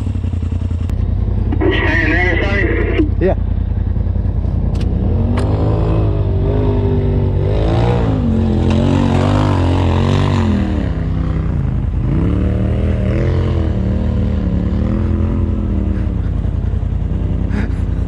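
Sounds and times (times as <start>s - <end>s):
engine revving up and down: 4.7s - 18.0s.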